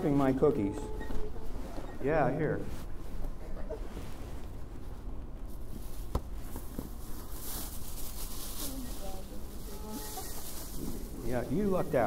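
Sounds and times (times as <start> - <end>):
handling noise: 0.0 - 12.0
faint murmured voices: 8.6 - 12.0.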